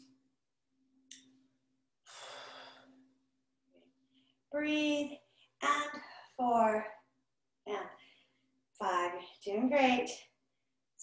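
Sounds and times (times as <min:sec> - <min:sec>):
woman breathing out: 0:02.0 - 0:03.1.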